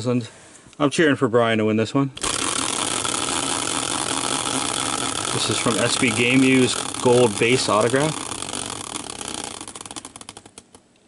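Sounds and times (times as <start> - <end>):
prize wheel pointer clicking: 2.2 - 10.8.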